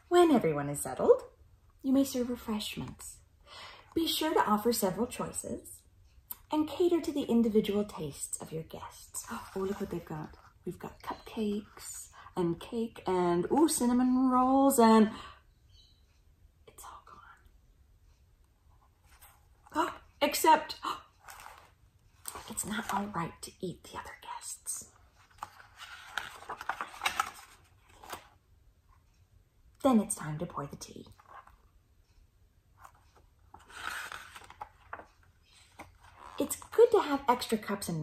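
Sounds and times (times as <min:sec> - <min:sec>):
woman's voice: 0:00.0 - 0:03.3, 0:03.9 - 0:15.4, 0:19.7 - 0:21.1, 0:22.3 - 0:24.9, 0:29.8 - 0:31.2, 0:36.4 - 0:38.0
book page turning: 0:09.2 - 0:10.5, 0:21.2 - 0:23.2, 0:25.2 - 0:28.4, 0:32.8 - 0:36.8
whispered breathy sound: 0:16.7 - 0:17.6
faint paper handling ticks: 0:32.8 - 0:36.4.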